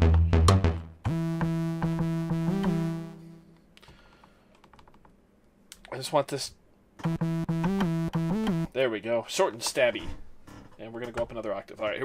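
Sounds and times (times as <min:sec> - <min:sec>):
synthesizer key clicks: 0:07.0 - 0:08.7.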